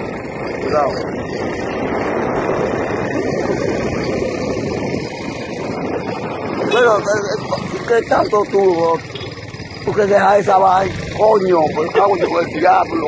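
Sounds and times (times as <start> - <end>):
motorcycle engine running: 0.0 - 13.0
wind rushing over microphone: 0.0 - 13.0.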